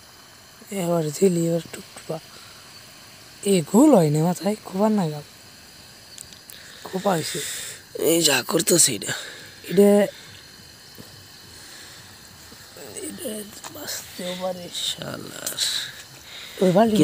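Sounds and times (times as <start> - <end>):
low steady hiss: 0.0 - 17.0
person speaking: 6.8 - 10.2, 12.7 - 17.0.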